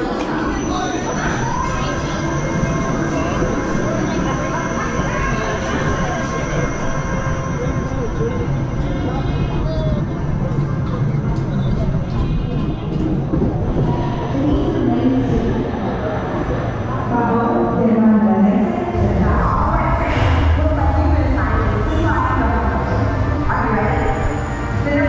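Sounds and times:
roller coaster wheels rumbling: 0.0 - 17.4, 18.8 - 25.0
faint background music: 0.0 - 25.0
faint voices: 0.0 - 25.0.

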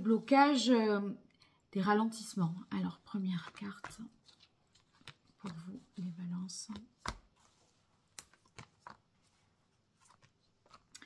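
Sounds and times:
cards clicking and rustling: 3.4 - 11.0.

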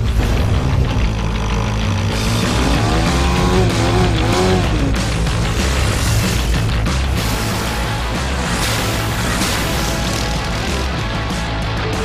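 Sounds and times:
loud rock music: 0.0 - 12.0.

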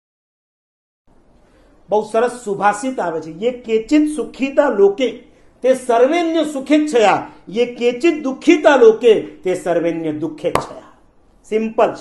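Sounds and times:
man speaking: 1.9 - 12.0
sharp knock: 10.5 - 10.8.

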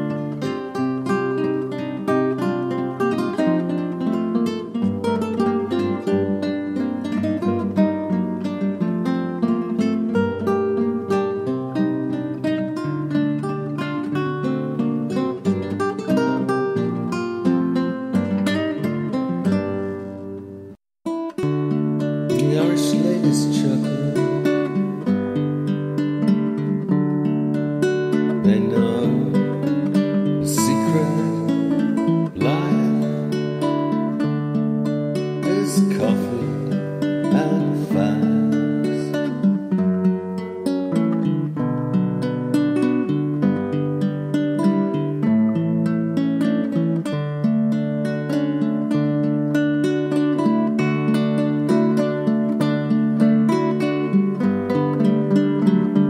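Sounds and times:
plucked strings folk tune: 0.0 - 56.0.

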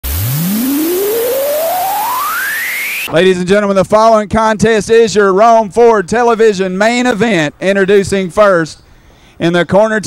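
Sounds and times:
synthesized rising tone sweep: 0.0 - 3.2.

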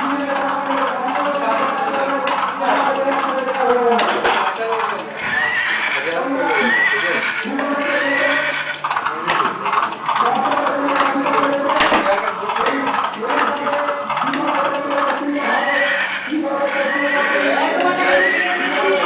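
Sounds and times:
horse neighing: 0.1 - 11.6, 12.9 - 19.0.

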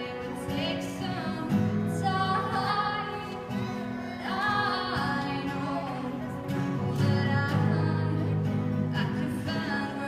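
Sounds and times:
acoustic guitar strumming: 0.0 - 10.0
young woman singing: 0.0 - 10.0.

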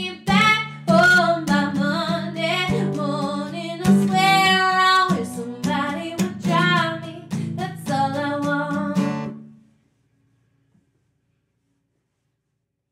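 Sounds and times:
woman singing: 0.0 - 9.3
strummed acoustic guitar: 0.0 - 9.6.

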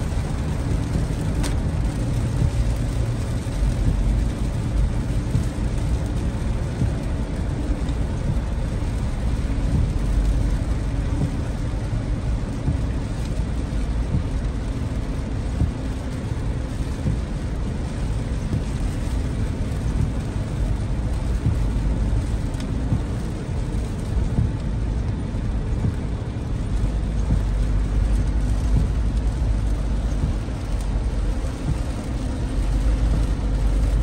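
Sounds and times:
heavy rain hiss: 0.0 - 34.0
tyre and road noise rumble: 0.0 - 34.0.

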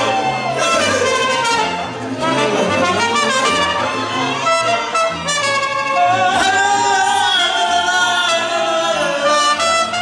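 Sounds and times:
mariachi band with violins and trumpets: 0.0 - 10.0
man singing into microphone: 6.2 - 9.6.

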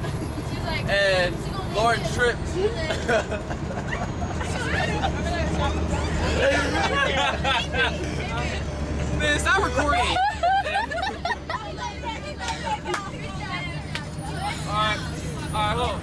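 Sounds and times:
bus engine and road rumble: 0.0 - 16.0
chatter of voices: 0.0 - 16.0.

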